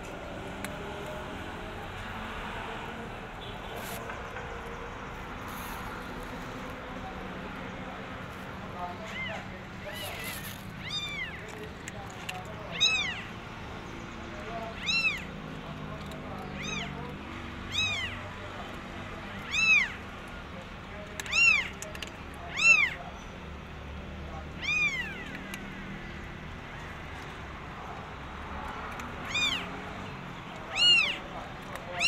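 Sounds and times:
newborn kittens mewing: 0:09.1 - 0:11.4, 0:12.7 - 0:13.4, 0:14.7 - 0:15.3, 0:16.6 - 0:17.0, 0:17.7 - 0:18.2, 0:19.4 - 0:20.0, 0:21.3 - 0:21.8, 0:22.5 - 0:23.0, 0:24.5 - 0:25.4, 0:29.2 - 0:29.7, 0:30.6 - 0:31.3.

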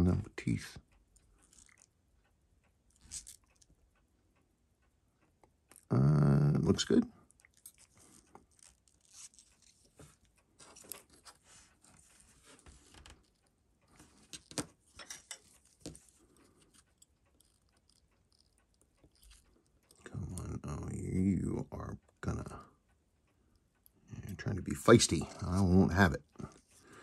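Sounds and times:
tweezers clicking and scraping: 0:01.1 - 0:01.9, 0:02.9 - 0:03.7, 0:07.3 - 0:20.5.

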